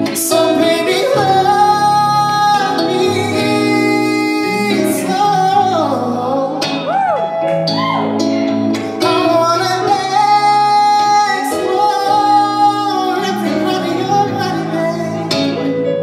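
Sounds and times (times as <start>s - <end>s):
man singing long notes: 0.0s - 7.3s, 8.9s - 15.9s
sustained keyboard accompaniment: 0.0s - 16.0s.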